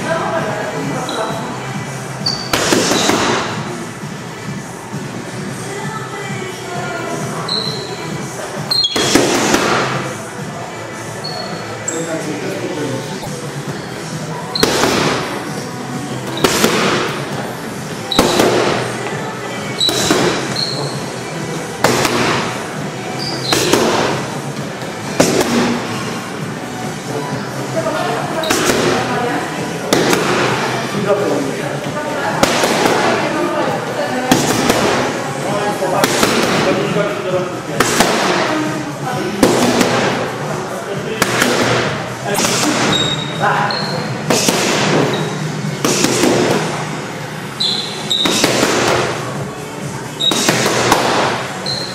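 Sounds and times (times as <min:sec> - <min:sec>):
punches smacking boxing pads: 0:02.5 - 0:03.6, 0:08.8 - 0:10.0, 0:14.6 - 0:15.4, 0:16.3 - 0:17.2, 0:18.1 - 0:18.9, 0:19.8 - 0:20.6, 0:21.8 - 0:22.6, 0:23.5 - 0:24.3, 0:25.1 - 0:25.9, 0:28.4 - 0:29.1, 0:29.9 - 0:30.6, 0:32.4 - 0:33.3, 0:34.3 - 0:35.2, 0:36.0 - 0:36.8, 0:37.8 - 0:38.5, 0:39.4 - 0:40.2, 0:41.2 - 0:43.0, 0:44.3 - 0:45.1, 0:45.8 - 0:46.7, 0:48.1 - 0:49.2, 0:50.2 - 0:51.4.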